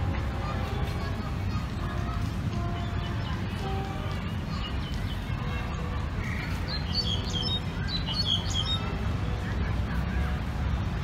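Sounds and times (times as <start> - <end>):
small birds chirping: 2.6 - 9.0.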